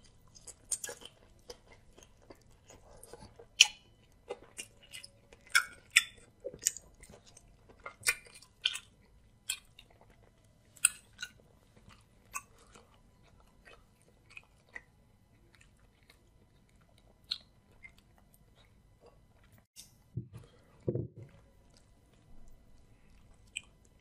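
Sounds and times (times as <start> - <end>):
close chewing: 0.0 - 24.0.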